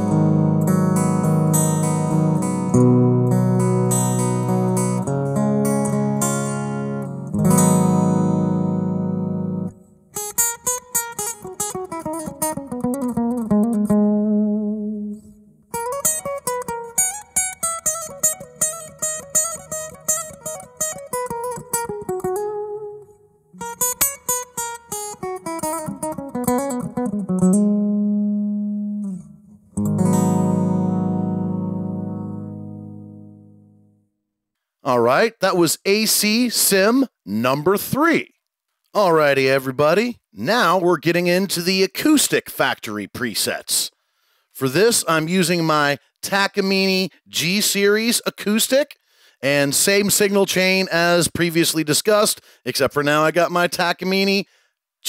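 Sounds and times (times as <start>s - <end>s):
strummed guitar chords: 0.0s - 34.0s.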